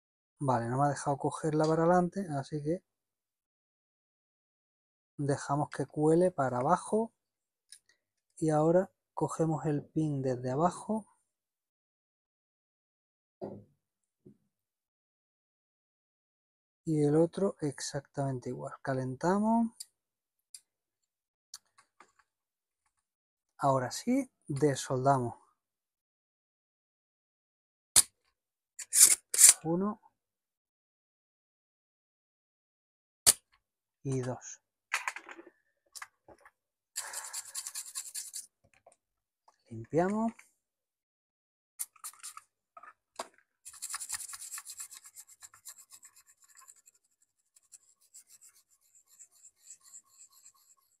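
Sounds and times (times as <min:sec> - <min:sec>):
brush scrubbing circuit board: 0:37.0 - 0:38.5, 0:41.8 - 0:42.4, 0:43.7 - 0:51.0.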